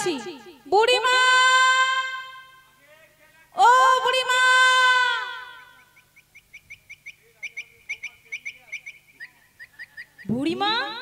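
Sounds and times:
small bird chirping: 5.7s - 10.5s.

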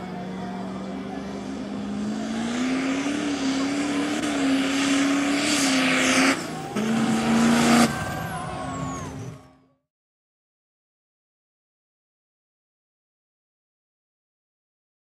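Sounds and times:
diesel truck engine revving: 0.0s - 9.6s.

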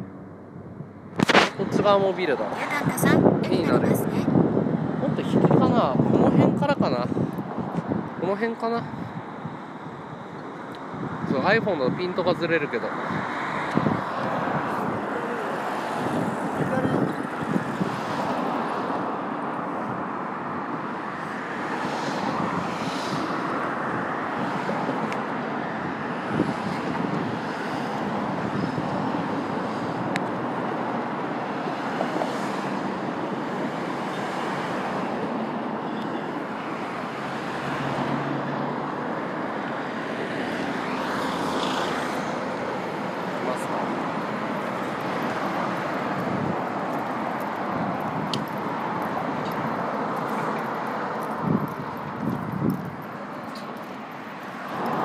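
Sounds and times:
cars passing: 0.0s - 55.0s
city road traffic noise: 0.0s - 55.0s.

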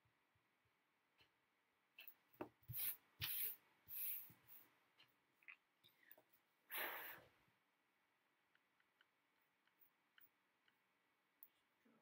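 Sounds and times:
scratchy rubbing on paper: 2.7s - 4.6s.

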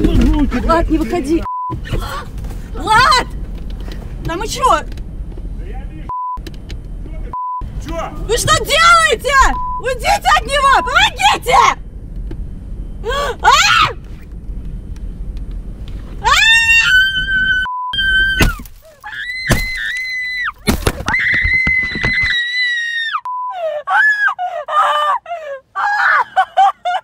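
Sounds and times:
woman screaming: 13.1s - 14.0s, 16.2s - 20.5s, 21.1s - 26.4s.

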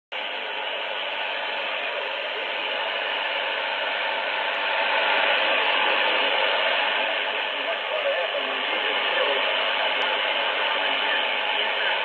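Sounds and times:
radio static hiss: 0.1s - 12.0s.

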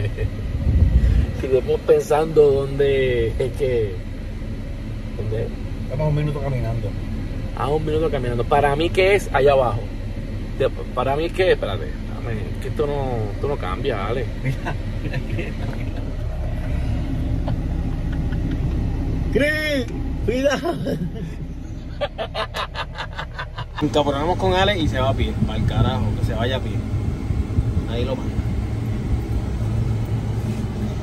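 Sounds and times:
engine rumble and road noise: 0.0s - 31.0s.

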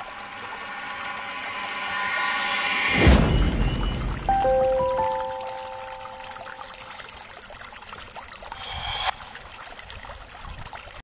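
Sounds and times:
held synth notes: 0.0s - 7.0s
watery hissing texture: 8.5s - 9.7s.

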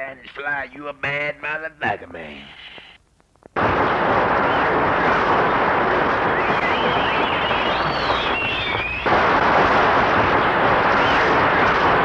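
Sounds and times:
explosion-like blasts: 3.6s - 12.0s
whistling pitch glides: 6.2s - 9.1s.

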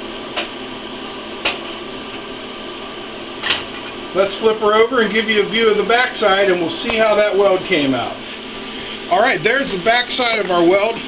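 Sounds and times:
welder cooling fan hum: 0.0s - 11.0s.

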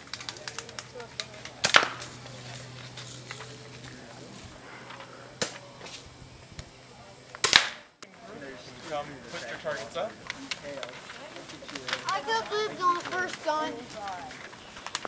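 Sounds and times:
bb gun shots: 1.5s - 2.3s, 7.4s - 7.9s.

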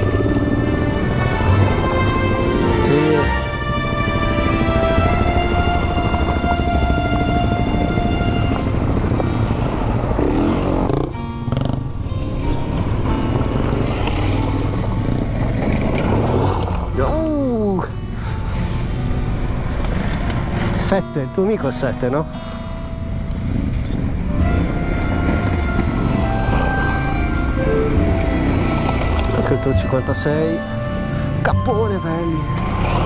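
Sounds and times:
off-road motorcycles riding past: 0.0s - 21.0s, 21.7s - 31.4s, 32.0s - 33.0s.

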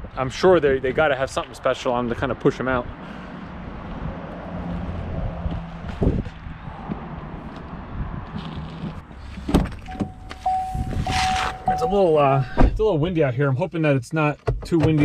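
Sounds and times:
wind buffeting microphone: 3.6s - 11.8s
car door warning chime: 9.9s - 12.5s
thump: 12.5s - 12.8s.

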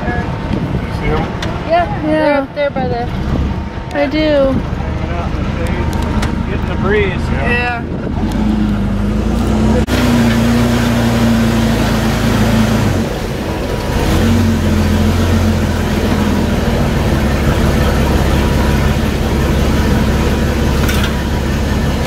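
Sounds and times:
tram engine running: 0.0s - 22.0s.

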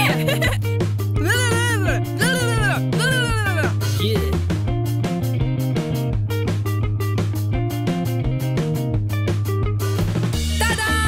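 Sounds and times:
upbeat background music: 0.0s - 11.0s
cartoon cat meow-like voice: 1.2s - 3.8s.

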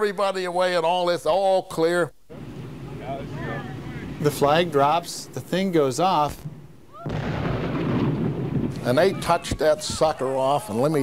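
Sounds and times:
explosion with low rumble: 6.4s - 10.1s.

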